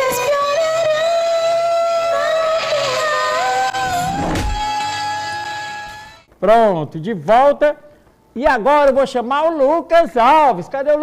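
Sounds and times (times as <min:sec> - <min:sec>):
instrumental backing: 0:02.2 - 0:06.4.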